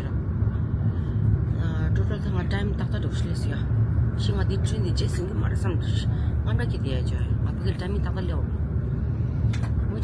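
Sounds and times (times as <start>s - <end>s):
train rumble inside carriage: 0.0s - 10.0s.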